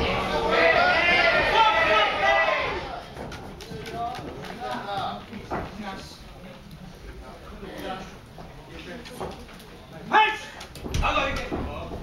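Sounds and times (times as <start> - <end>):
spectators shouting in a hall: 0.0 - 3.1.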